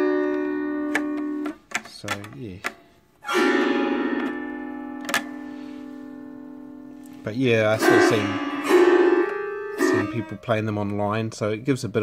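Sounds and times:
autoharp chord strummed: 3.2s - 10.7s.

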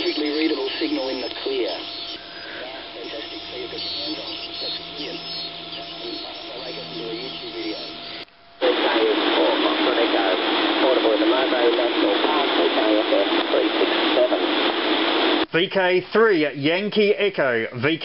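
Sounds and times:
radio static and hiss: 0.0s - 18.0s
voices buried in radio noise: 0.0s - 18.0s.

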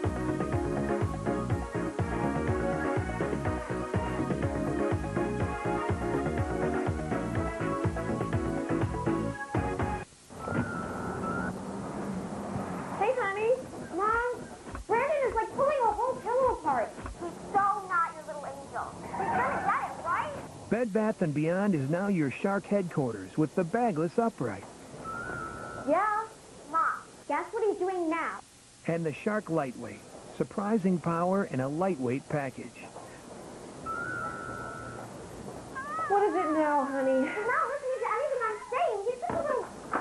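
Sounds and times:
cat meowing: 35.7s - 37.1s.

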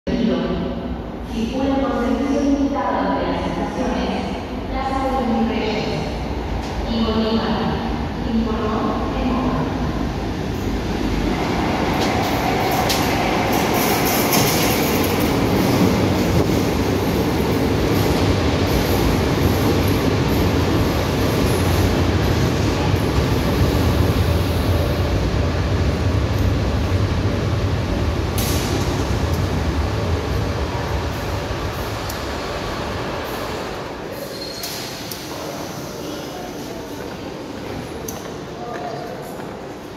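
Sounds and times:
subway train rumbling: 0.1s - 39.9s.

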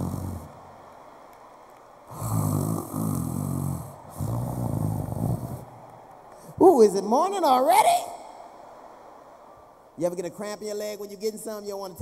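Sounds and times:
man imitating snoring: 0.0s - 0.5s, 2.1s - 5.6s.

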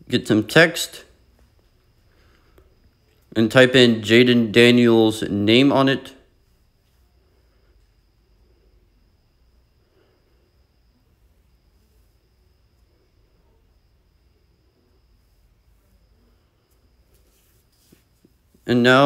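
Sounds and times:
faint high-pitched whine: 0.0s - 19.0s
low hum: 0.0s - 19.0s.

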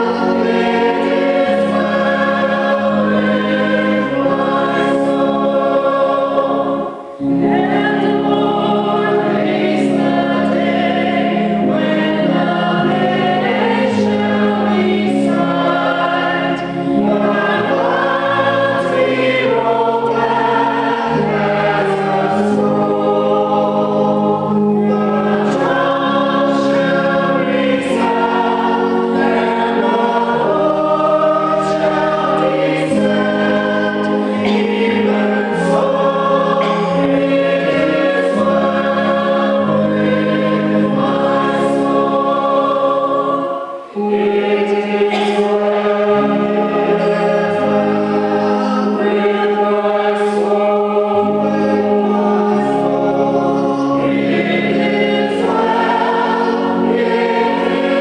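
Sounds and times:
group singing a hymn in harmony: 0.0s - 58.0s.

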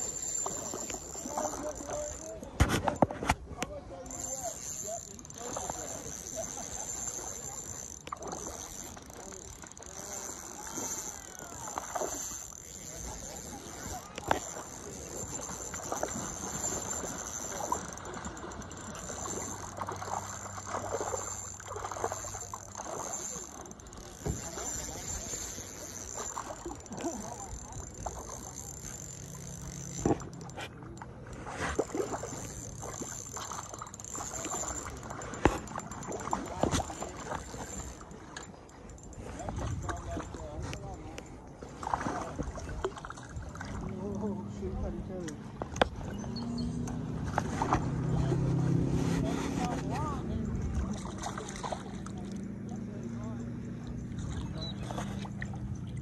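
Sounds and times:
fishing reel being cranked: 0.0s - 3.1s, 4.0s - 41.3s
fish splashing: 4.2s - 38.9s, 46.9s - 52.4s.

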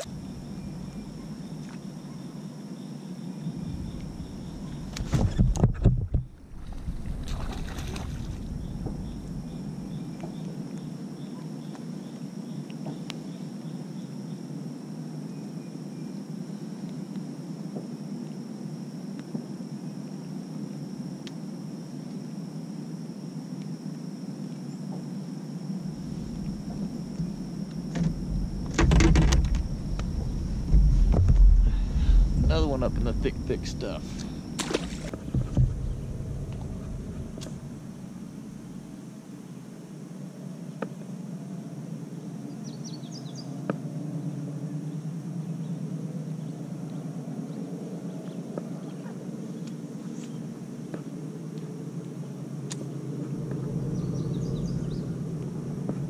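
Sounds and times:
water and wind noise: 3.4s - 10.6s, 25.8s - 39.0s
loud bursts of noise: 26.1s - 38.7s.

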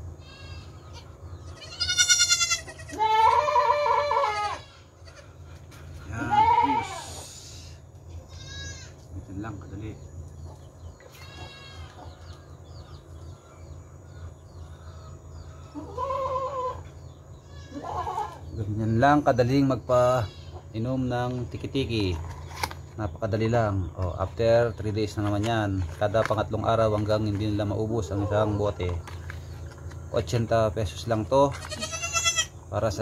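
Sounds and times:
goat kids bleating: 0.0s - 9.2s, 11.0s - 12.3s, 15.6s - 18.6s, 19.2s - 21.4s, 31.1s - 33.0s.

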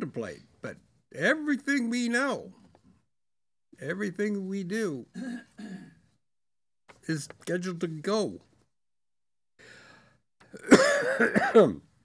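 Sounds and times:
man clearing throat: 5.1s - 6.0s, 10.5s - 11.8s.

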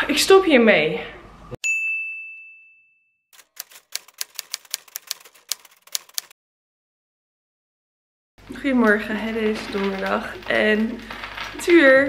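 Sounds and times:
bell-like ding: 1.6s - 3.2s
typewriter key clicks: 3.4s - 6.3s.

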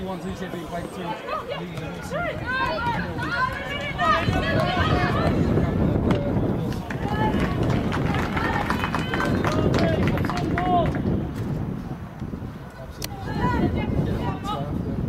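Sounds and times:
high voices shouting: 1.1s - 5.9s, 6.9s - 11.0s.

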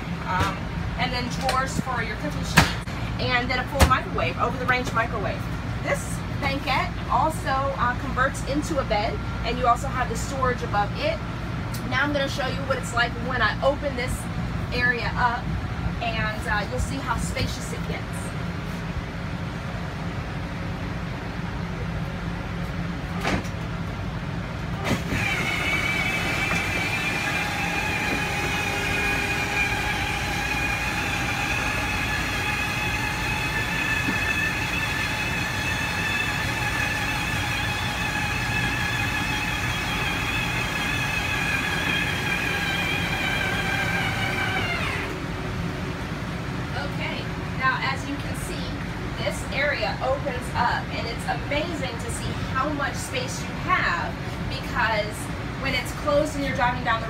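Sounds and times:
constant low hum: 0.0s - 57.0s
motor whining: 24.8s - 45.2s.

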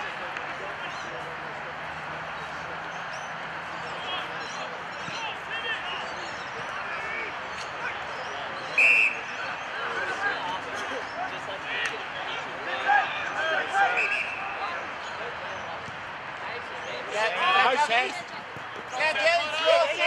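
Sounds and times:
players calling and shouting: 0.0s - 20.0s.

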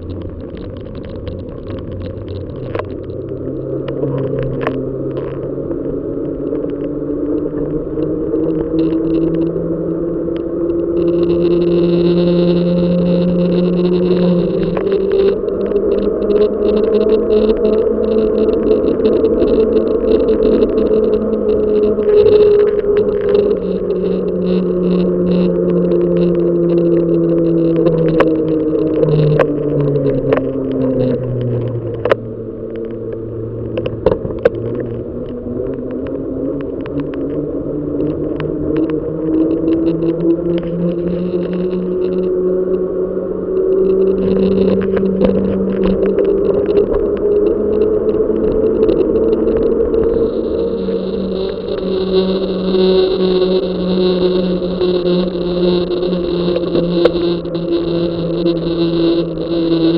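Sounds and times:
bicycle hum on asphalt: 0.0s - 59.9s.

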